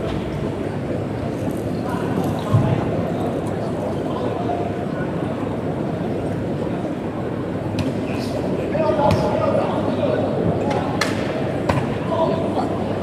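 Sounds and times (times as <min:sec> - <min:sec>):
crowd talking and shouting: 0:00.0 - 0:13.0.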